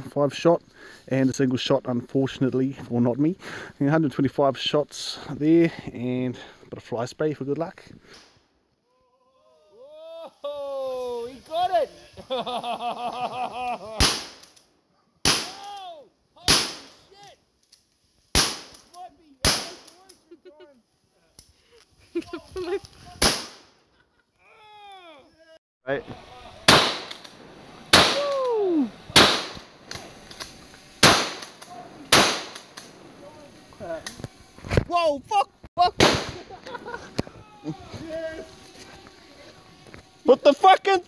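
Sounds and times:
shotgun shots: 0:14.0 - 0:14.4, 0:15.2 - 0:15.6, 0:16.5 - 0:17.0, 0:18.4 - 0:18.8, 0:19.4 - 0:19.9, 0:23.2 - 0:23.7, 0:26.7 - 0:27.3, 0:27.9 - 0:28.3, 0:29.1 - 0:29.7, 0:31.0 - 0:33.0, 0:36.0 - 0:36.5.

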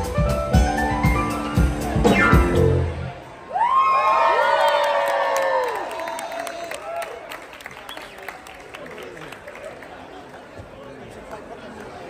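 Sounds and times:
audience cheering and whooping: 0:03.2 - 0:07.5
audience applause: 0:03.5 - 0:12.0.

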